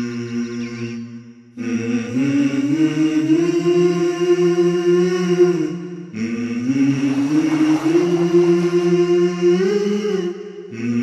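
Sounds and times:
voices singing in harmony: 0:00.0 - 0:11.0.

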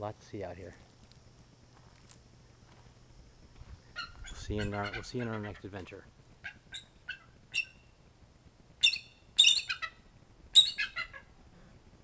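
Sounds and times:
eagle chirping and piping: 0:03.8 - 0:05.7, 0:06.4 - 0:08.0, 0:08.8 - 0:11.3.

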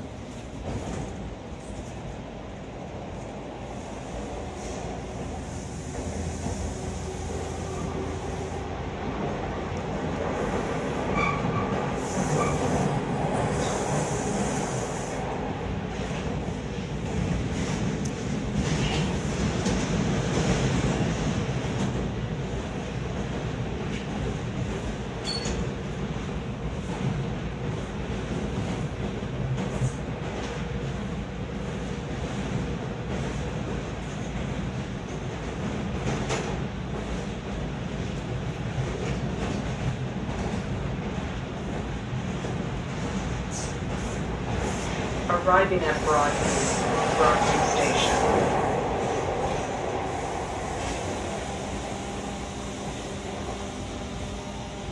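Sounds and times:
train wheels on rails: 0:03.1 - 0:54.9.

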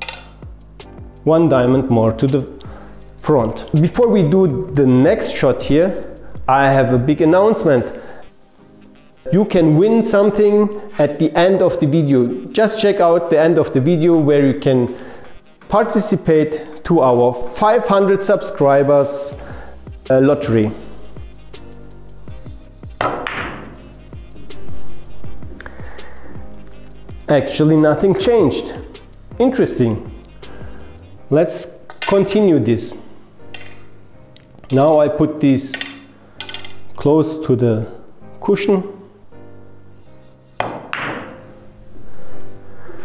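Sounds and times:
background music with steady beat: 0:00.0 - 0:43.0
billiard balls clacking: 0:23.0 - 0:23.8, 0:33.5 - 0:33.9, 0:35.7 - 0:36.9, 0:40.6 - 0:41.5
cue striking billiard ball: 0:23.0 - 0:23.8, 0:40.6 - 0:41.5.

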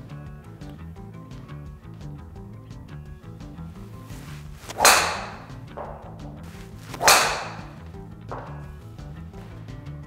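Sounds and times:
background music: 0:00.0 - 0:10.0
golf driver striking ball: 0:04.6 - 0:08.8.

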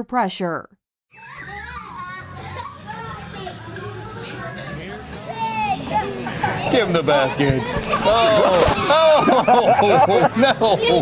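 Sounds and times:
children calling and chattering: 0:01.1 - 0:11.0.

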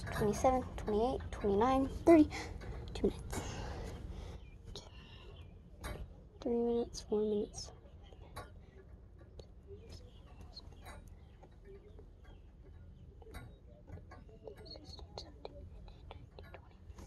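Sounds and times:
soft whispering: 0:00.0 - 0:12.2, 0:12.8 - 0:17.0.

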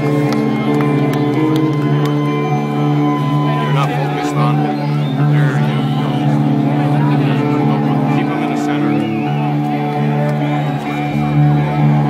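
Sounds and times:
rock band low drone: 0:00.0 - 0:12.0.

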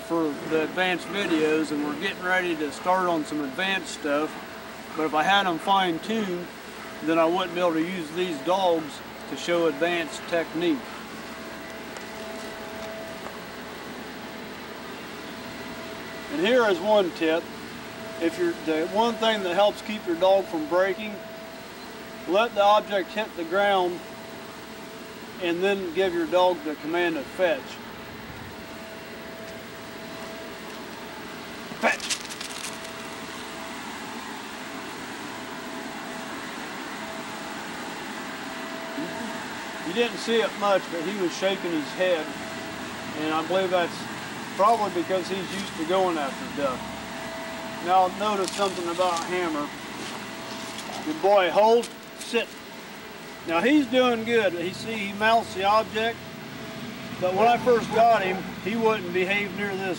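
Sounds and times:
faint constant whine: 0:00.0 - 0:59.9
faint hum: 0:00.0 - 0:59.9.

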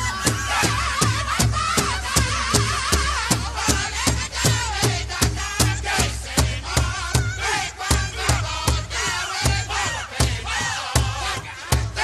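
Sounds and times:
big drum beat: 0:00.0 - 0:12.0
high wavering group singing: 0:00.0 - 0:12.0.

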